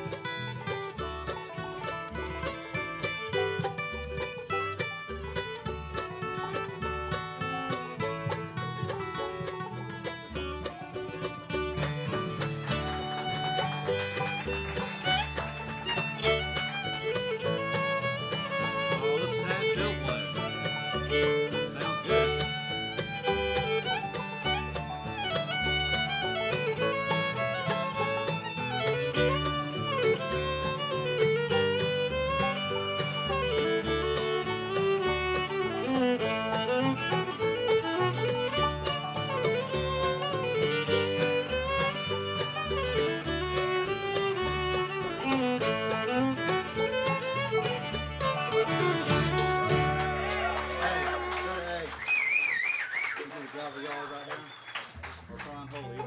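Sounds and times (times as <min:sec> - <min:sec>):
fiddle melody: 0:00.0 - 0:51.9
bluegrass band playing: 0:00.0 - 0:53.1, 0:54.6 - 0:56.0.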